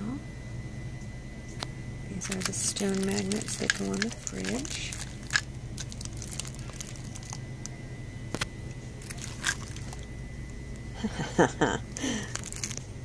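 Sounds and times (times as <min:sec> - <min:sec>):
low store hum: 0:00.0 - 0:13.0
cellophane crinkling: 0:02.2 - 0:07.8, 0:09.0 - 0:10.2, 0:12.0 - 0:13.0
sharp crackles and clicks: 0:02.2 - 0:07.8, 0:08.4 - 0:10.9, 0:12.0 - 0:12.9.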